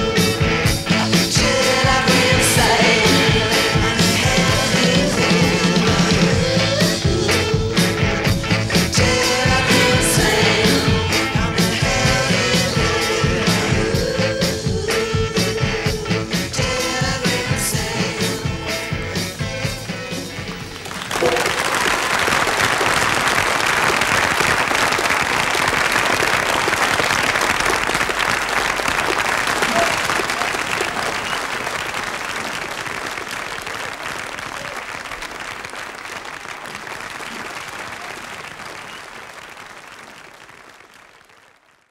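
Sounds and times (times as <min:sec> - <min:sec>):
music: 0:00.0 - 0:21.6
audience applauding: 0:20.6 - 0:41.9.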